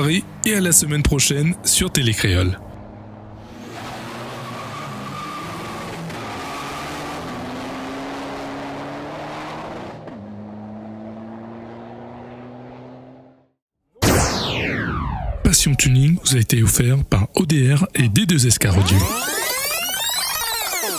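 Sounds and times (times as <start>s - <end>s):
car engine accelerating hard: 2.7s - 13.6s.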